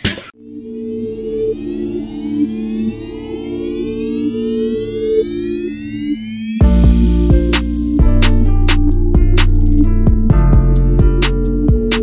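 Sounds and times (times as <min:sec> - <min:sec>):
rising synth sweep: 0:00.4 - 0:11.0
held synthesizer notes: 0:00.4 - 0:12.0
soft pulsing bass: 0:00.4 - 0:12.0.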